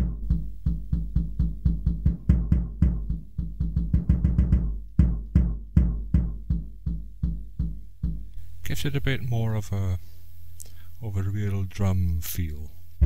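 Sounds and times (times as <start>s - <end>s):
kick drum hits: 0.0s - 8.4s.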